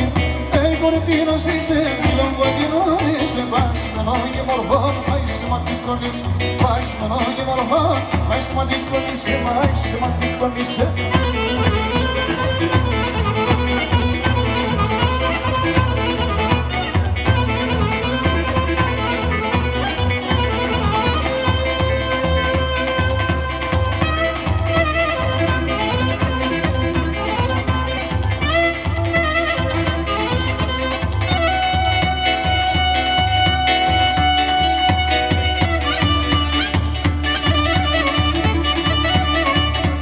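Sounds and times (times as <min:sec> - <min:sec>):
keyboards: 0:00.0 - 0:40.0
low drum beat: 0:00.0 - 0:40.0
clarinet melody: 0:11.0 - 0:40.0.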